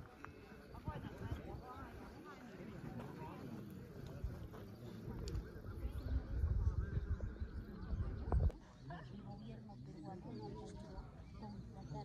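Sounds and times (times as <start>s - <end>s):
faint voices: 0.0s - 12.0s
wind buffeting microphone: 5.1s - 8.6s.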